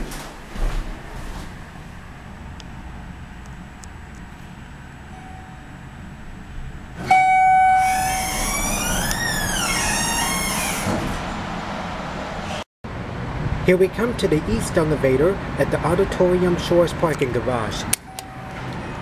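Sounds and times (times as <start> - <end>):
elevator car hum: 0.0 - 19.0
loud steady tone: 2.2 - 10.3, 18.0 - 19.0
siren wailing: 7.0 - 10.9.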